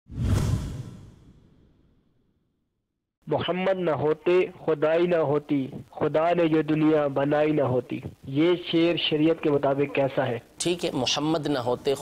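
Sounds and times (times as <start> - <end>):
whoosh with deep boom: 0.1 - 2.2.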